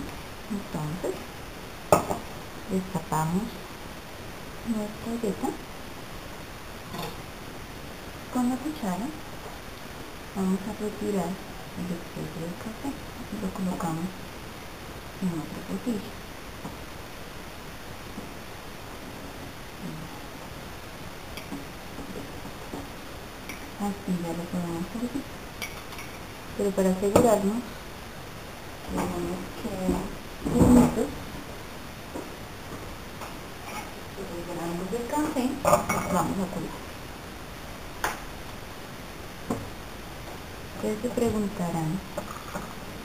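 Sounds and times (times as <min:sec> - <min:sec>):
steady background hiss: 0:00.0 - 0:43.0.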